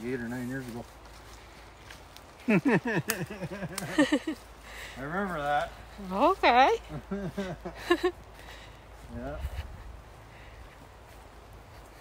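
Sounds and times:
woman laughing: 0:02.5 - 0:04.4, 0:06.6 - 0:08.2.

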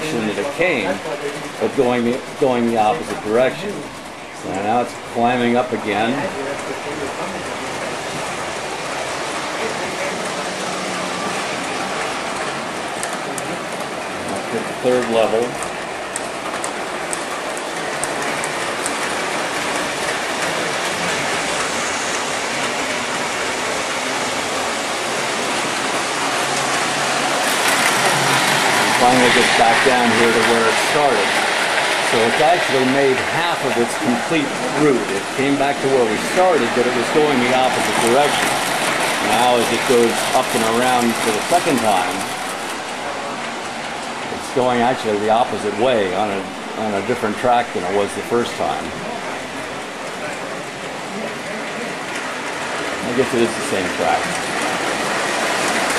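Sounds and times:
model train rolling on track: 0:00.0 - 0:55.9.

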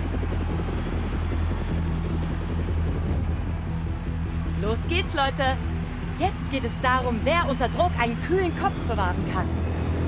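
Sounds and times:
cartoon helicopter rotor chopping: 0:00.0 - 0:03.2
background music: 0:00.0 - 0:10.0.

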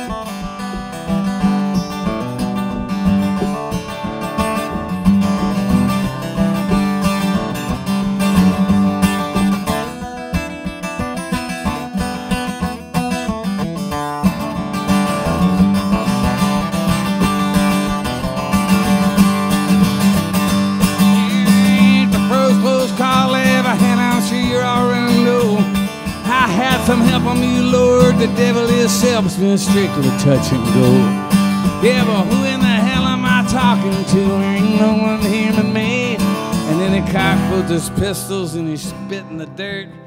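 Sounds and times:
acoustic guitar strummed and picked: 0:00.0 - 0:40.0.

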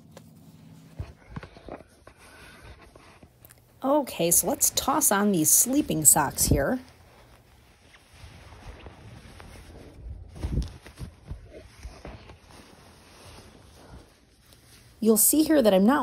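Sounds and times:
rustling of nylon fabric: 0:00.0 - 0:16.0.

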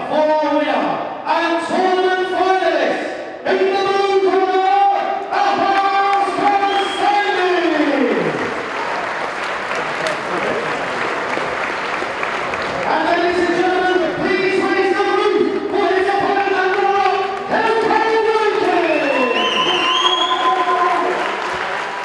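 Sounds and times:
crowd applause and cheering: 0:05.6 - 0:22.0.

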